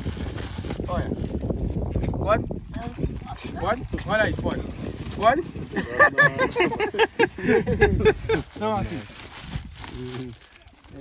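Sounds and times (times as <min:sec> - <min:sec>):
rustling of grocery bags: 0:00.0 - 0:02.0, 0:02.8 - 0:11.0.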